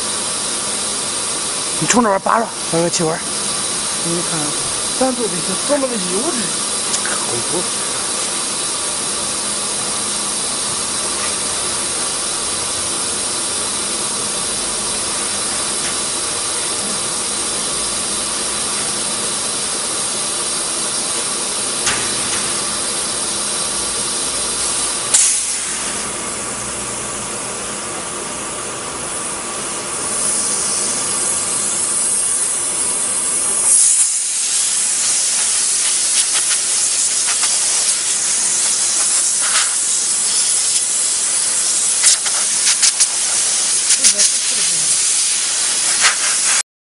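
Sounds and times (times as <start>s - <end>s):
compressed air hissing from nozzle: 0.0s - 46.6s.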